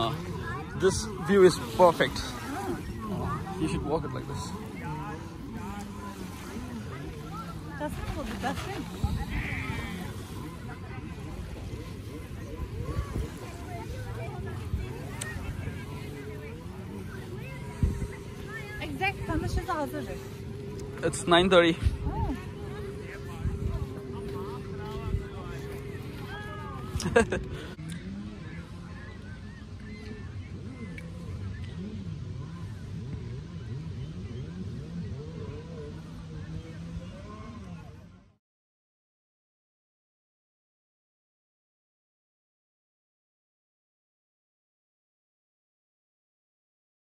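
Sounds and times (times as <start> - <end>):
steady low rumble: 0.0 - 38.1
people talking and calling: 0.0 - 38.4.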